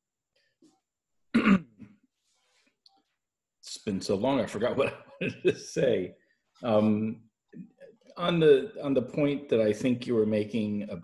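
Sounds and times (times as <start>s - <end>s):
man clearing his throat: 1.3s - 2.0s.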